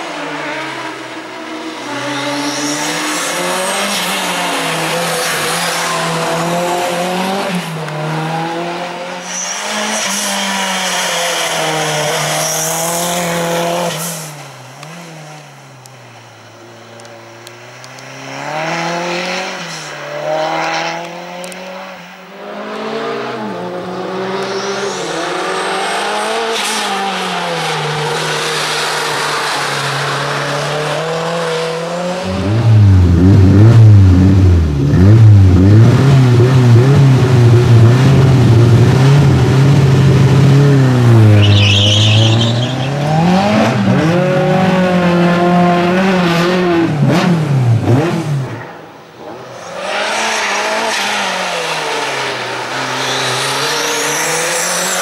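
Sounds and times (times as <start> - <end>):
race car engine revving: 0.0 - 55.0
tyre squeal: 9.2 - 14.5, 41.1 - 43.4.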